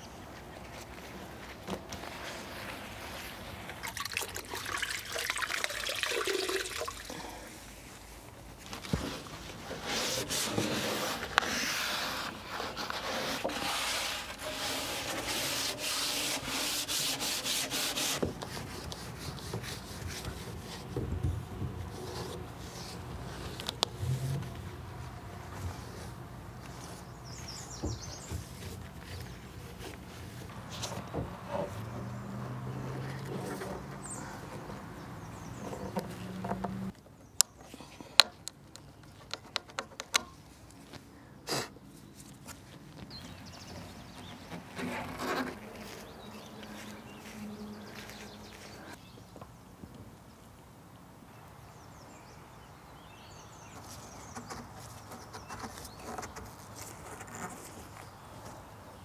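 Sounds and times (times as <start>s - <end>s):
scrub pad scrubbing wood: 9.0s - 23.4s.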